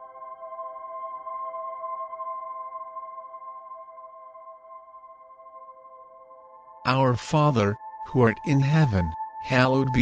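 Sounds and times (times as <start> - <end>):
sustained chord of held tones: 0.0 - 10.0.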